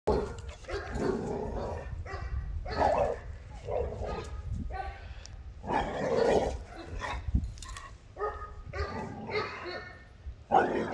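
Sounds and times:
puppy barking: 0:02.1 - 0:03.2, 0:04.0 - 0:05.0, 0:08.2 - 0:10.0.

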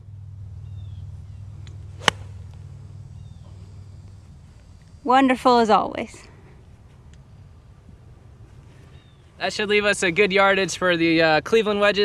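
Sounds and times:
low steady rumble: 0:00.0 - 0:12.0
golf club striking ball: 0:01.4 - 0:03.7.

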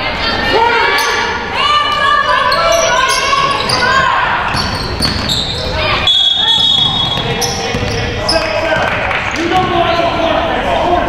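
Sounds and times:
people calling out: 0:00.0 - 0:08.7
sneakers squeaking: 0:00.9 - 0:10.0
basketball bouncing on hardwood: 0:04.5 - 0:05.3, 0:06.6 - 0:09.0.

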